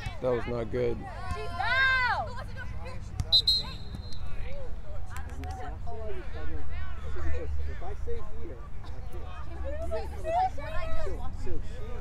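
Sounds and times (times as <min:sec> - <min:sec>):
referee's whistle: 0:03.2 - 0:04.4.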